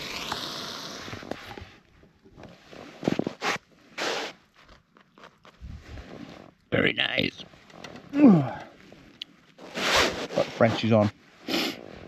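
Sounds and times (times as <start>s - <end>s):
gas stove hissing: 0.0s - 1.4s
scrapes and rustles of handling: 1.2s - 6.7s, 7.3s - 12.0s.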